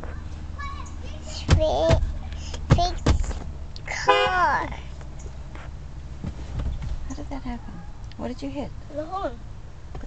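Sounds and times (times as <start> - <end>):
car horn honking: 3.9 - 4.6.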